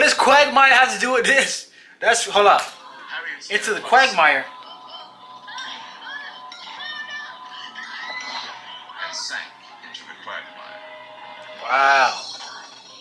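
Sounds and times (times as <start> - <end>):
background music with held tones: 0.0 - 13.0.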